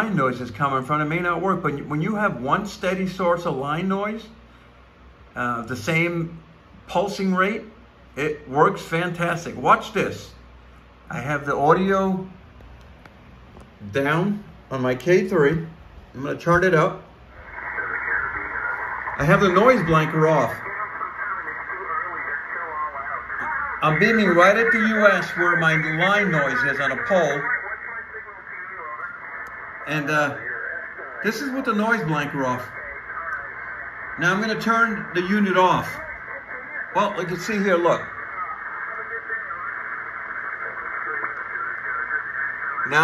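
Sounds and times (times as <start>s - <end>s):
radio voice through speaker: 16.4s - 43.0s.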